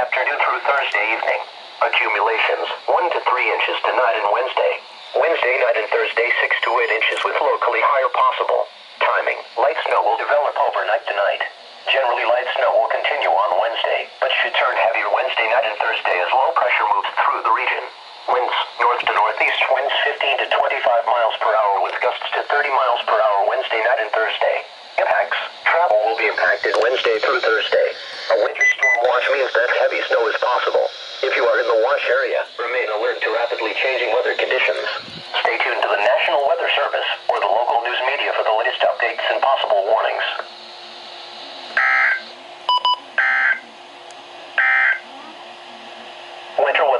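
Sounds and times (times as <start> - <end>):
synthesized voice on radio speaker: 0.0 - 40.5, 44.8 - 46.9
warbling digital data bursts: 5.1 - 8.4, 25.0 - 37.0.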